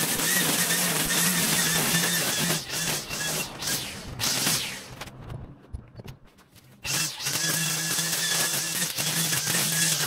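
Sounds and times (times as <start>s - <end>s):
string trimmer running: 6.9s - 10.0s
trimmer line cutting grass: 6.9s - 10.0s.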